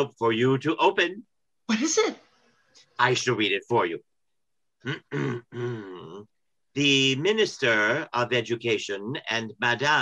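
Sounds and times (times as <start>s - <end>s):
man clearing his throat: 4.9s - 6.2s.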